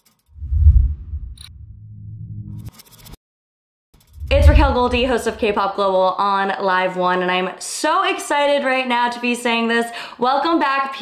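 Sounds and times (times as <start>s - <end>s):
deep bass swell: 0.4s - 2.6s, 4.2s - 5.6s
low hum: 0.4s - 2.7s, 4.2s - 5.6s.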